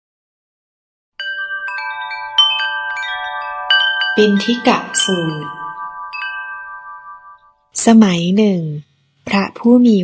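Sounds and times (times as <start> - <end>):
wind chimes ringing: 1.2 - 7.7.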